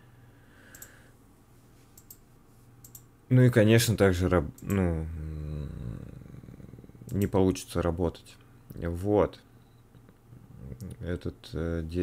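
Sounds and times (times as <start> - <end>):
faint computer clicks: 0.7 - 1.0, 1.9 - 3.1.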